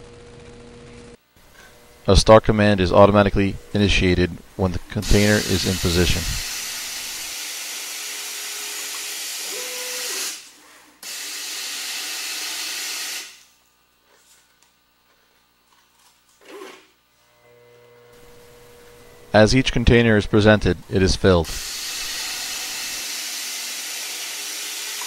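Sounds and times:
faint hum with thin tone: 0.0 - 6.4, 17.0 - 21.5.

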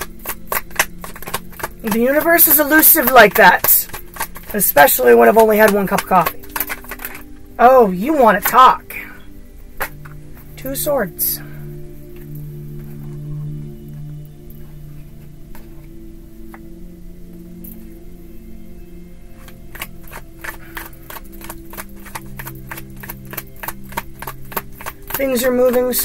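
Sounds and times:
cards being shuffled: 0.0 - 7.5, 19.3 - 26.0
soft ambient music: 0.0 - 26.0.

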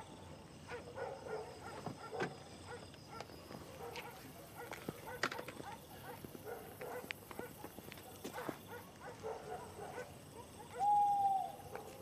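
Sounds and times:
steady hoot: 10.7 - 11.7.

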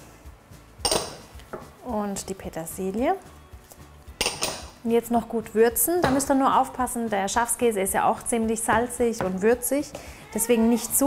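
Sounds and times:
glass dish clinking on bowl: 0.8 - 1.2.

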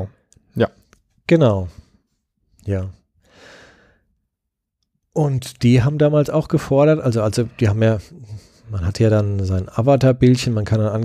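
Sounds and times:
person breathing into microphone: 3.2 - 4.1.

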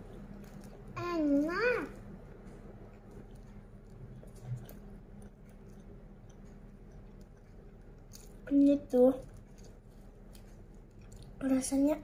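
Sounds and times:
faint chewing: 0.0 - 12.0.

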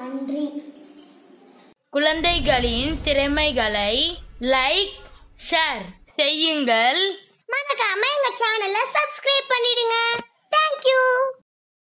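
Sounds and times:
child's sing-song voice: 0.0 - 0.8.

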